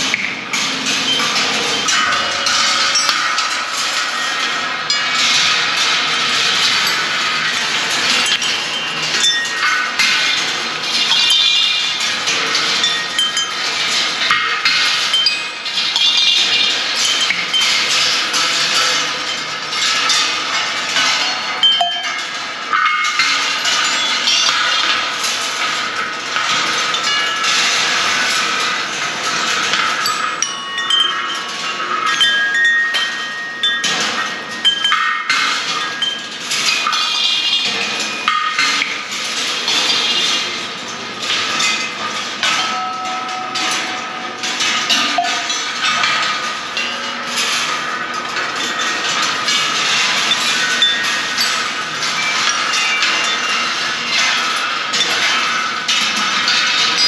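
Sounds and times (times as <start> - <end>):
balls clattering along tracks: 0.0 - 57.0
metallic bell and chime tones: 8.2 - 9.9, 12.8 - 13.6, 21.2 - 22.3, 30.0 - 35.2, 42.6 - 45.7.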